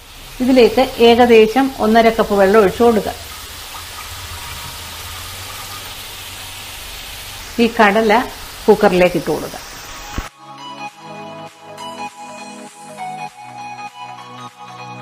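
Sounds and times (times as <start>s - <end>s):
pressure cooker sizzling hiss: 0.0s - 10.3s
water pouring: 0.0s - 10.3s
music: 10.3s - 15.0s.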